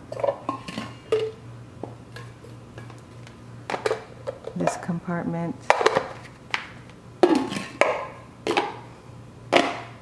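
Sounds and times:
containers knocking and clicking: 0.1 - 8.9, 9.5 - 10.0.

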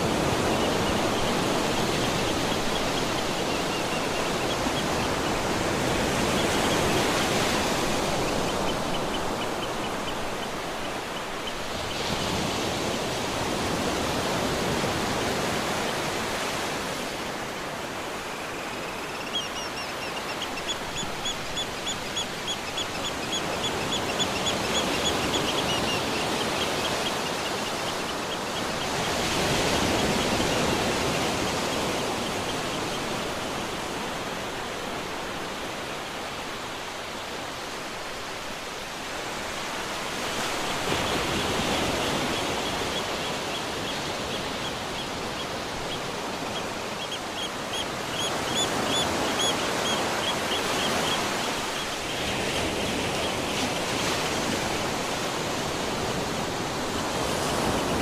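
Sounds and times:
sea waves washing on shore: 0.0 - 58.0.

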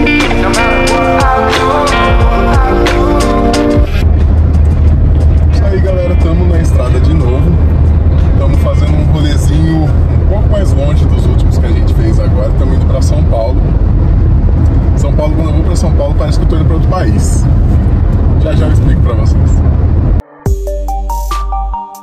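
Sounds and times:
car interior rumble: 1.0 - 20.2
people talking: 5.4 - 7.6, 8.3 - 13.6, 15.0 - 17.5, 18.4 - 19.6.

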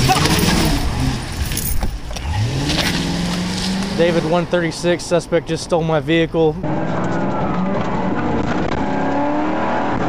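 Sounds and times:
car engine revving: 0.0 - 5.5, 6.5 - 10.0.

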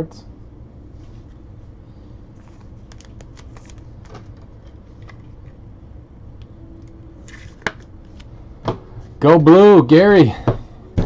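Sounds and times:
cards rustling: 2.4 - 5.6.

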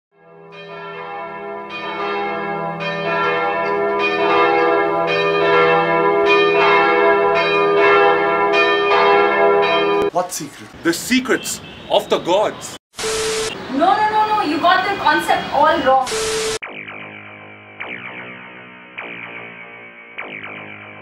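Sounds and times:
bell tolling: 0.5 - 10.1.

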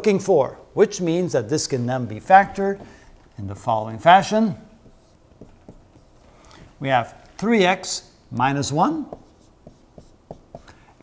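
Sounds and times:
marker pen on whiteboard: 2.1 - 7.5, 8.3 - 11.0.

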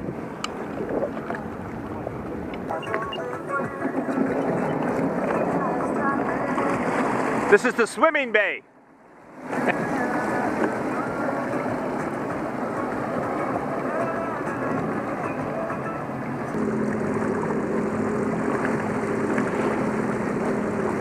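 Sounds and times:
water rushing over hull: 0.0 - 21.0
watercraft engine running: 0.0 - 21.0.

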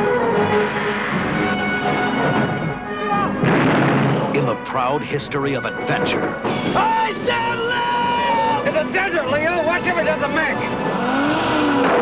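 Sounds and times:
action trailer music: 0.0 - 7.6
loud explosion blast: 3.4 - 4.6.

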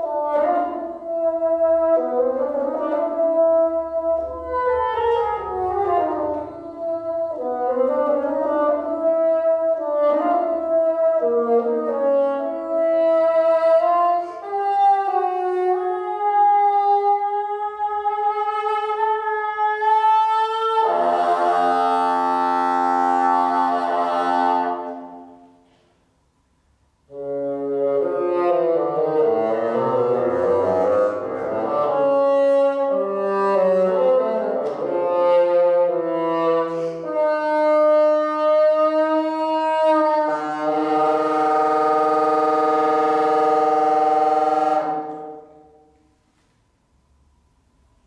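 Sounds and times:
hall reverberation: 0.0 - 16.3, 20.8 - 37.4, 39.9 - 48.0
solo bassoon: 0.0 - 25.8, 27.0 - 46.6.

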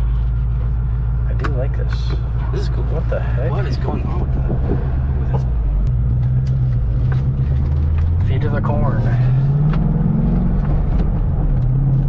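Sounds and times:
car engine pulling under throttle: 0.0 - 12.0
road noise: 0.0 - 12.0.

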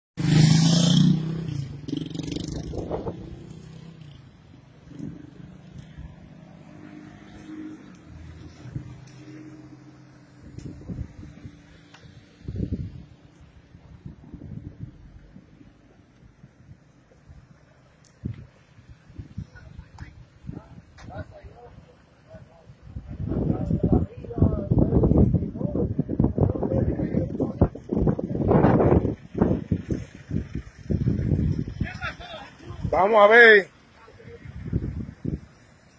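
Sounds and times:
vehicle engine humming: 0.3 - 35.9
wind buffeting microphone: 1.5 - 3.7, 7.9 - 9.2, 10.2 - 33.0, 34.2 - 35.8.

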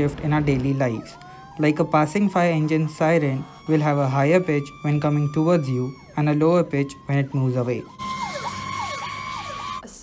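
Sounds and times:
fire engine siren: 0.0 - 10.0.

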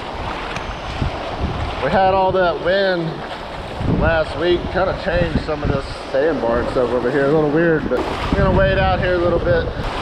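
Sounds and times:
water sloshing around legs: 0.0 - 8.8
shallow surf: 0.0 - 10.0
wind buffeting microphone: 0.0 - 10.0.

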